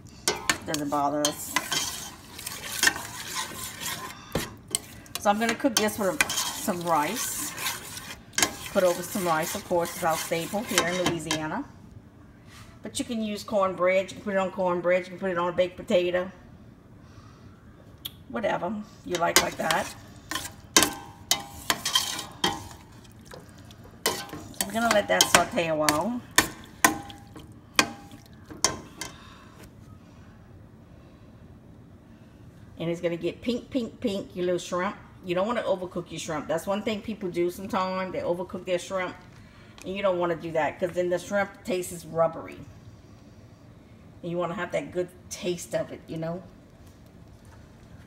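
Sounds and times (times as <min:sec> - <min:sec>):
spoon scraping a metal pot: 0:00.3 - 0:11.5, 0:19.1 - 0:23.1, 0:24.0 - 0:29.2
butter sizzling: 0:00.6 - 0:11.0.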